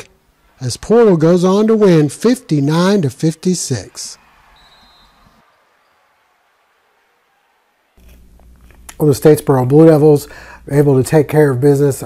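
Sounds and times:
faint low studio hum: 0.0s - 12.0s.

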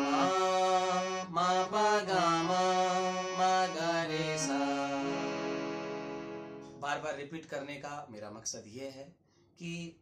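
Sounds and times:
man singing: 0.0s - 5.5s
harmonium playing held notes: 0.0s - 7.0s.

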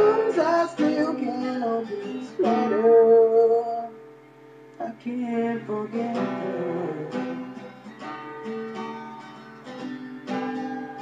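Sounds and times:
man singing: 0.0s - 4.0s, 4.8s - 7.6s
acoustic guitar strumming: 0.0s - 11.0s.

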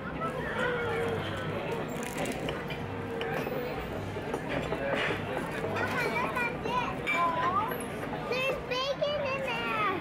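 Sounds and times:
children calling and chattering: 5.6s - 10.0s.

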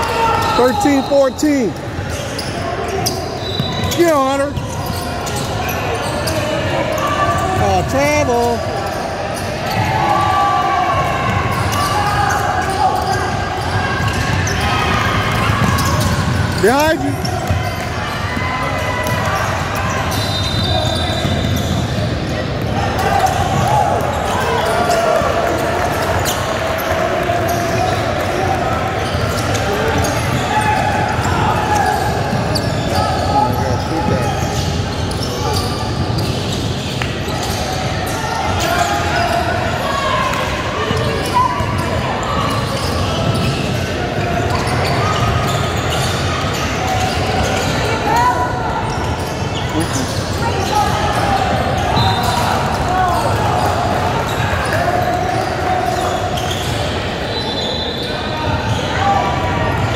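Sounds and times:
people talking and calling: 0.0s - 59.9s.

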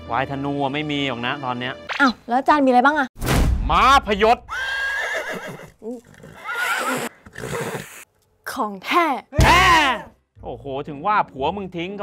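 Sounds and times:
horse neighing: 4.5s - 8.0s.

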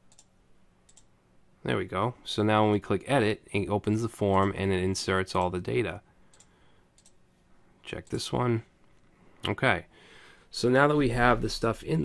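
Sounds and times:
computer mouse clicks: 0.0s - 0.3s, 0.9s - 1.1s, 6.3s - 7.2s.

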